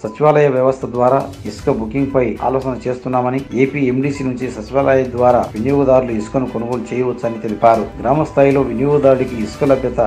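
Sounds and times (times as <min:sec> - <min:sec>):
man reading narration: 0:00.0 - 0:10.0.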